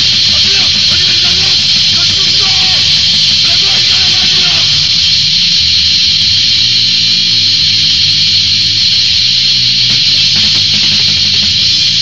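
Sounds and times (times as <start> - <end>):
electric guitar: 0.0 - 12.0
hiss: 0.0 - 12.0
low bass notes: 0.0 - 12.0.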